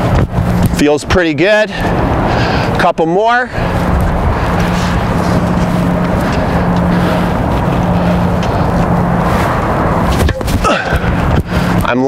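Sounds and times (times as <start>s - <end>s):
motor drone: 3.5s - 11.8s.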